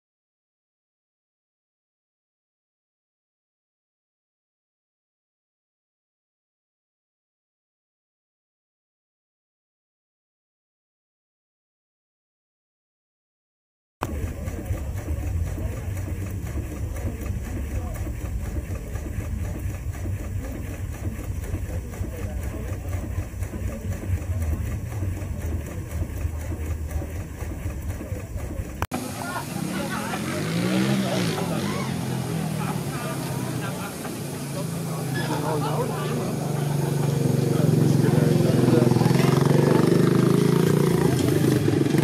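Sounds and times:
people talking: 14.0 - 42.0
steam engine running: 14.0 - 42.0.

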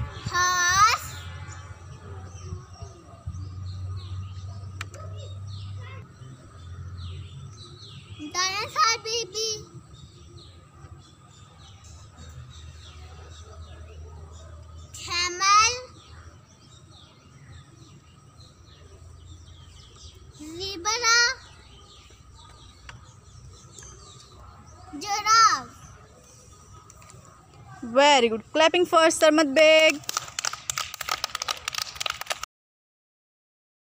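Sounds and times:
small birds chirping: 0.0 - 32.2
children clapping: 29.7 - 32.5.

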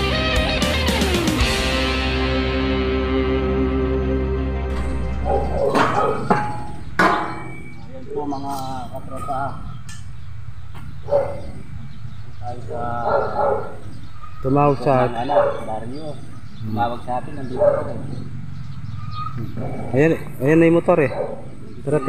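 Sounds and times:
electric guitar music: 0.0 - 7.8
sharp knocks: 4.7 - 7.8
people talking: 7.2 - 9.7, 12.4 - 13.4, 14.5 - 18.3.

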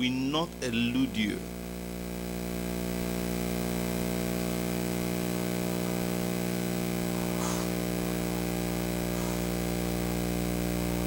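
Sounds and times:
electrical mains hum: 0.0 - 11.0
light hiss: 5.3 - 11.0.

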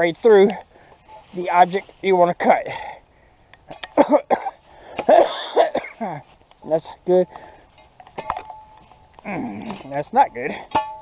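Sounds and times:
man coughing: 3.9 - 6.3.

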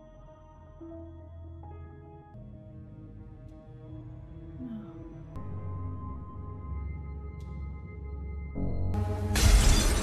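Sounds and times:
soft sustained music: 0.0 - 10.0
glass shattering: 9.4 - 10.0.

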